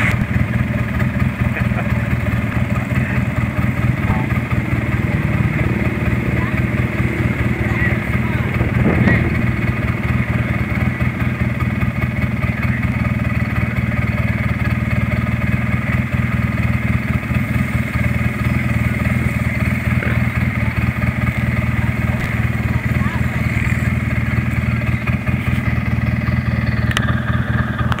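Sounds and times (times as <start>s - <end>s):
vehicle engine running steadily: 0.0s - 28.0s.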